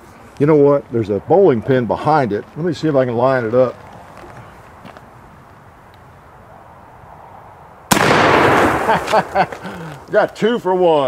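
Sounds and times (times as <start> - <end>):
rifle shot with echo: 7.9 - 9.5.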